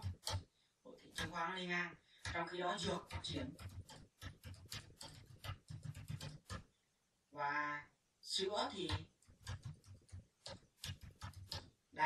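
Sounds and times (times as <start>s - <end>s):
computer keyboard keys clicking: 0.0s - 0.5s, 2.2s - 6.7s, 8.8s - 11.7s.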